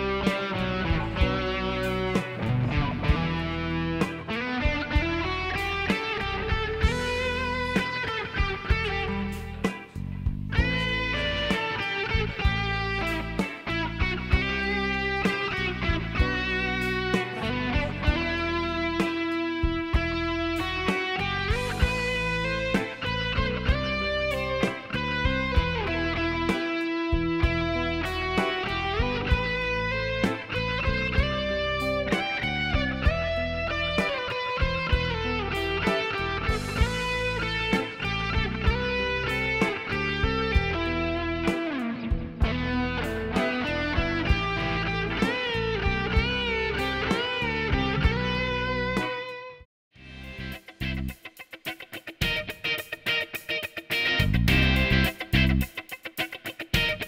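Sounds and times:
electric guitar music with beat: 0.0s - 57.0s.

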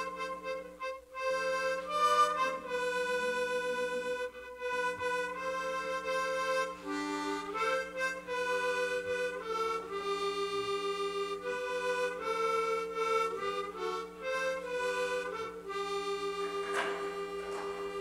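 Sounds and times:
harmonica melody: 0.0s - 18.0s.

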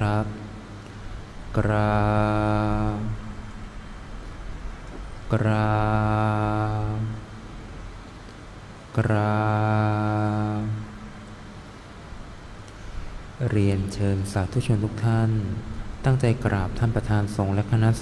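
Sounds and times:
man chanting on one low pitch: 0.0s - 0.6s, 1.5s - 3.6s, 5.3s - 7.4s, 8.9s - 11.1s, 13.4s - 18.0s.

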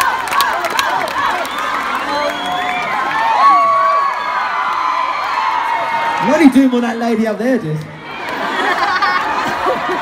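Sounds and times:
crowd cheering and screaming: 0.0s - 10.0s.

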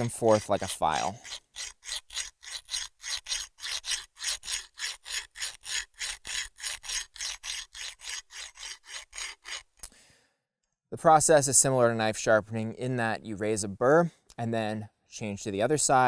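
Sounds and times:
sharpener rasping on steel edge: 0.0s - 9.9s.

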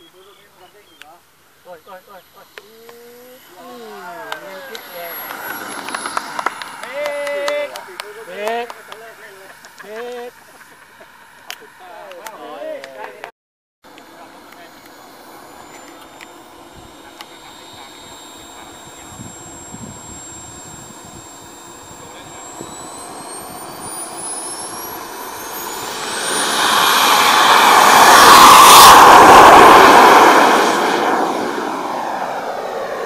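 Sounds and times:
model jet engine whining: 0.0s - 12.8s, 13.9s - 33.0s.

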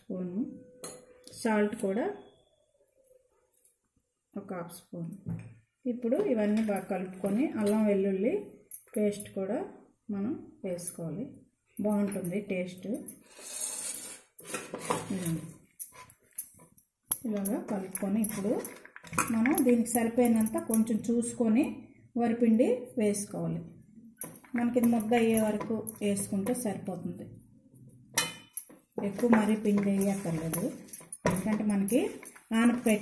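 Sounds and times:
metal spoons clinking on bowls: 14.4s - 21.4s, 24.2s - 27.0s, 28.1s - 33.0s
person talking: 15.0s - 15.6s, 17.2s - 23.7s, 24.5s - 27.3s, 29.0s - 33.0s.

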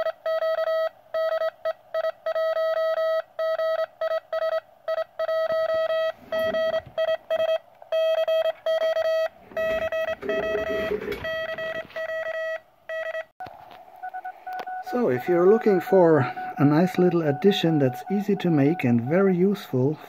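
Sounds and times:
morse code tone: 0.0s - 13.3s, 14.0s - 20.0s.

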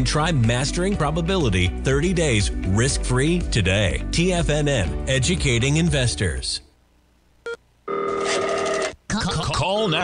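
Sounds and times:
telephone trilling ring: 7.9s - 9.0s.

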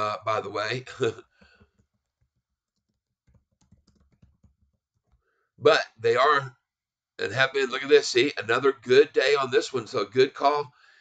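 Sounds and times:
man talking: 0.0s - 1.2s, 5.6s - 6.6s, 7.2s - 10.7s
computer keyboard keystrokes: 2.8s - 5.2s.

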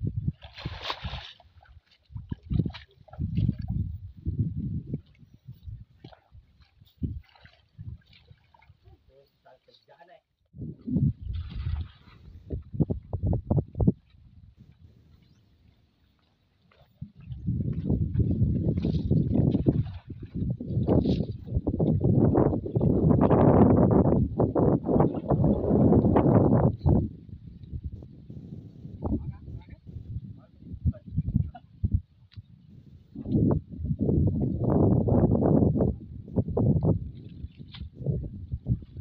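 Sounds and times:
water splashing and sloshing: 0.0s - 10.1s, 10.7s - 24.1s, 36.6s - 39.0s.

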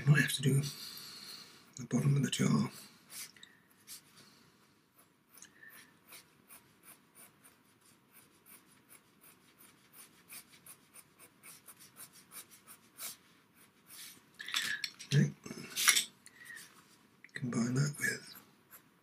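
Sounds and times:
pencil scratching on paper: 4.9s - 14.2s, 18.3s - 19.0s
knocks and handling sounds: 14.3s - 17.0s.

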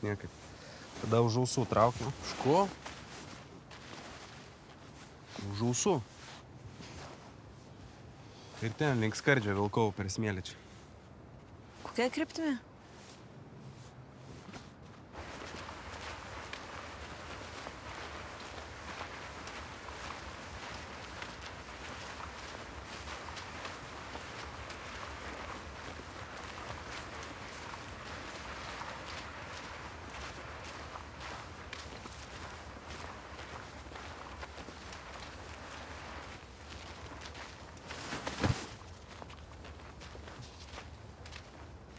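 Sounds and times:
footsteps through long grass: 0.0s - 9.8s, 12.8s - 41.9s.

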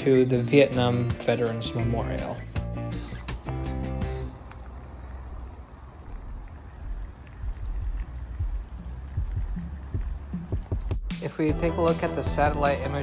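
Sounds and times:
low rumble: 3.2s - 11.7s
soft low thumps: 6.3s - 11.2s.

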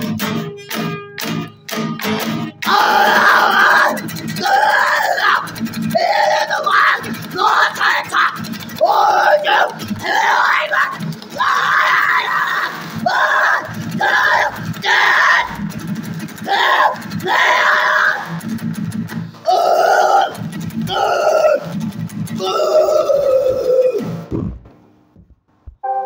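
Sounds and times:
acoustic guitar strumming: 0.0s - 6.3s, 7.0s - 8.8s, 25.6s - 26.0s
man screaming hoarse vocals: 2.6s - 15.6s, 16.4s - 18.4s, 19.4s - 24.3s.

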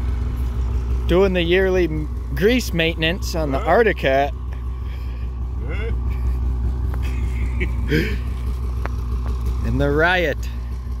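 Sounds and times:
low droning hum: 0.0s - 11.0s
voice: 1.1s - 4.3s, 5.6s - 6.0s, 9.6s - 10.5s.

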